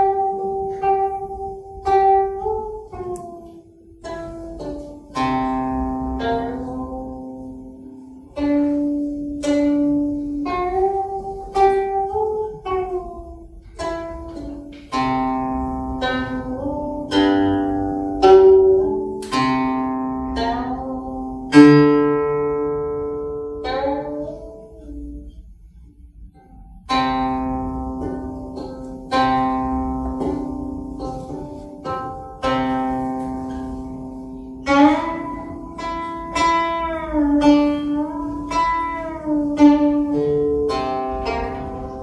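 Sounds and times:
plucked zither notes: 0.0s - 42.0s.

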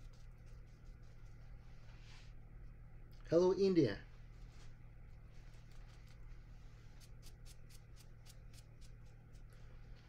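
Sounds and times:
brush strokes on paper: 0.0s - 2.4s, 4.2s - 7.4s
steady low hum: 0.0s - 10.0s.

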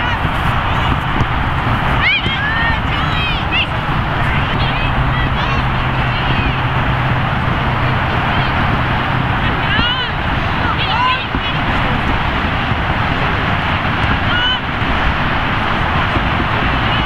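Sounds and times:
people shouting: 0.0s - 17.0s
steady rushing noise: 0.0s - 17.0s.

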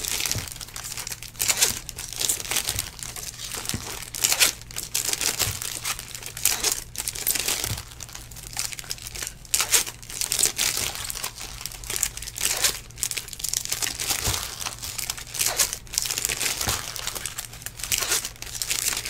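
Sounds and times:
wrappers tearing and crinkling: 0.0s - 19.0s.

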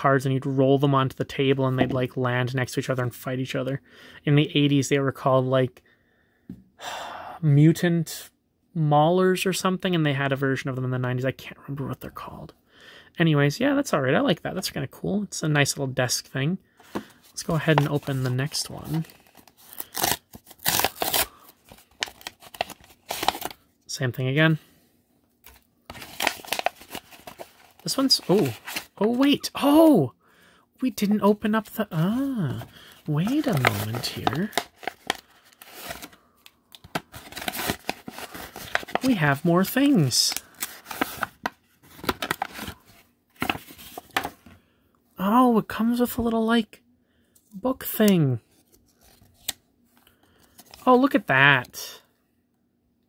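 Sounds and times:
packaging crinkling: 18.8s - 23.6s, 25.4s - 29.3s, 32.7s - 44.3s
paper pouch tearing: 18.9s - 23.6s, 25.9s - 29.1s, 33.2s - 36.2s, 37.1s - 39.2s.

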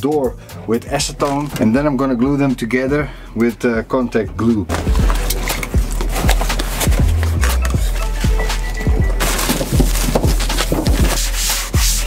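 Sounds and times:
background music: 0.0s - 12.0s
cloth rubbing on steel sheet: 9.3s - 12.0s.

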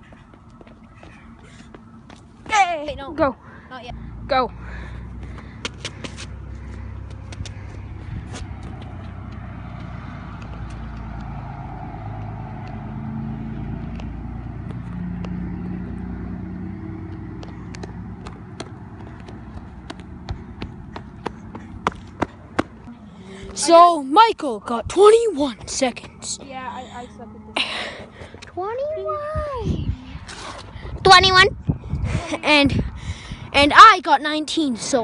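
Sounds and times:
vehicle passing by: 0.0s - 33.6s.

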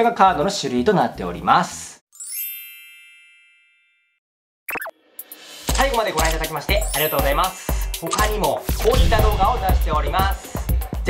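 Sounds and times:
bright chime: 2.2s - 4.2s.

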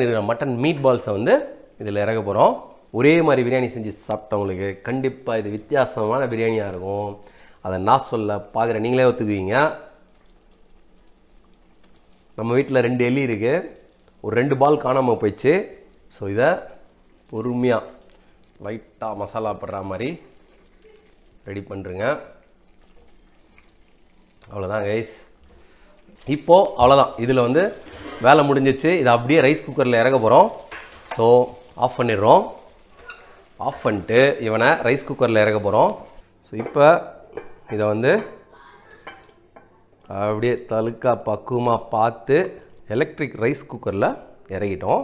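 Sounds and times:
wooden spatula stirring gravy: 13.0s - 24.6s, 25.3s - 36.2s
person speaking: 24.4s - 45.0s.

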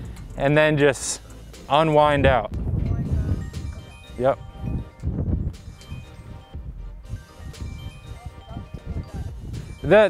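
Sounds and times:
light chiming background music: 0.0s - 10.0s
low rumble: 4.6s - 8.0s.

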